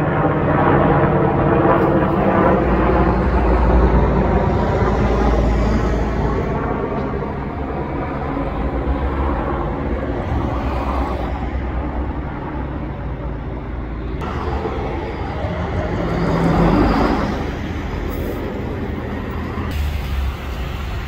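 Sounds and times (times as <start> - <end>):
helicopter rotor rumble: 0.0 - 21.0.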